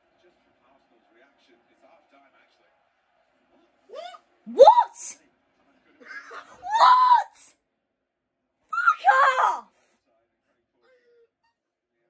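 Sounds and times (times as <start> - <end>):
faint indistinct speech: 0.0 - 7.7, 8.7 - 12.0.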